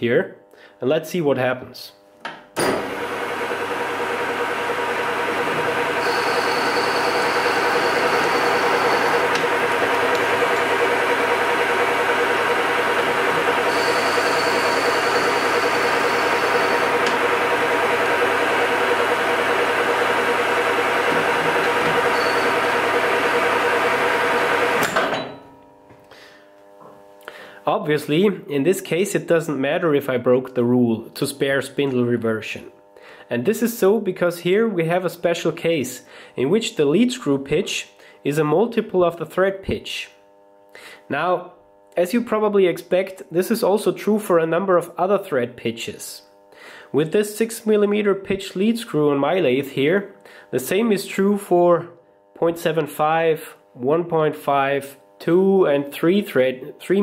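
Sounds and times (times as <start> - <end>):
metal lathe motor whine: 2.6 - 25.7.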